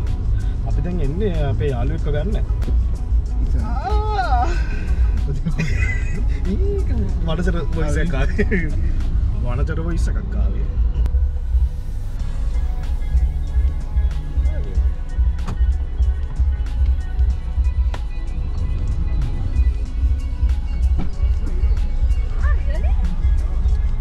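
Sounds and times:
music with bass-heavy beat: 0.0 - 9.8, 10.8 - 24.0.

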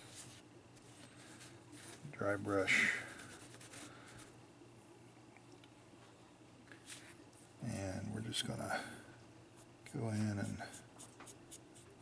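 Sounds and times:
paintbrush rubbing on paper towel: 3.0 - 4.2.

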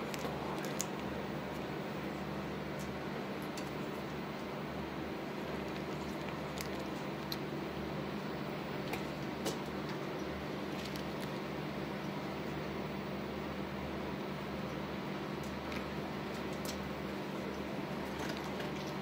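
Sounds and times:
ventilation fan humming: 0.0 - 19.0.

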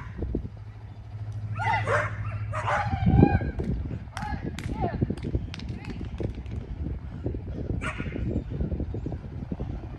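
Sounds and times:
steady low rumble: 0.0 - 9.9
dog barking: 1.6 - 3.0.

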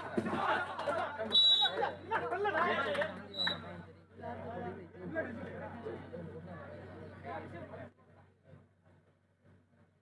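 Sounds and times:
shrill whistle blast: 1.3 - 1.8.

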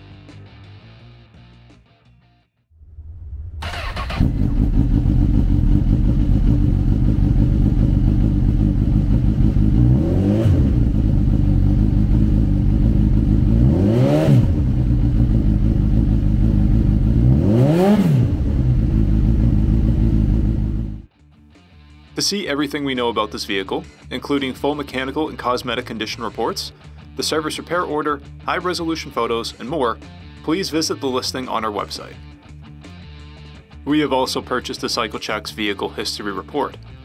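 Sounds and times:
motorcycle engine idling and revving: 3.4 - 21.1.

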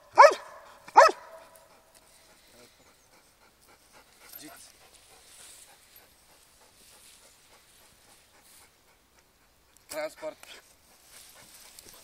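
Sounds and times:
dog barking loudly: 0.1 - 1.5.

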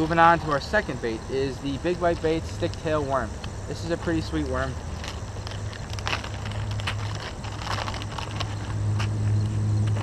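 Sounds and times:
plastic package crinkling: 4.5 - 8.8.

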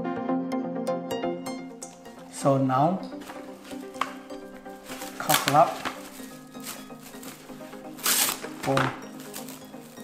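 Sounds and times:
cling film crinkling: 3.0 - 10.0
cling film rustling: 3.0 - 10.0.

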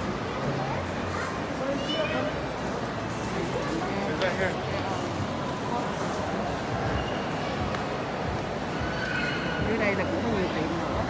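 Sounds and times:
echoing crowd chatter: 0.0 - 11.0.

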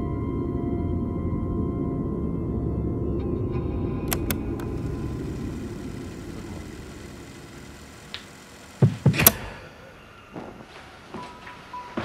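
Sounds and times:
low rumbling drone: 0.0 - 8.8
sharp clicks: 4.1 - 9.5.

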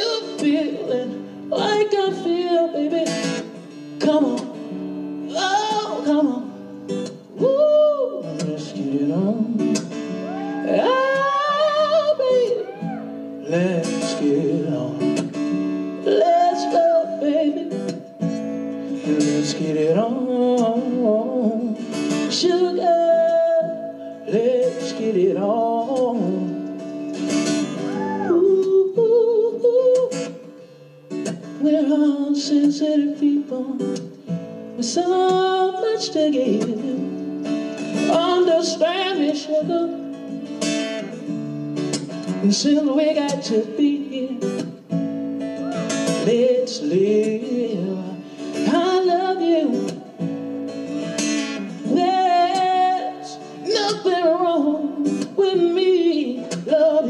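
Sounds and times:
man singing: 0.0 - 26.8, 27.4 - 41.4, 42.2 - 57.0
acoustic guitar chords: 0.0 - 57.0.

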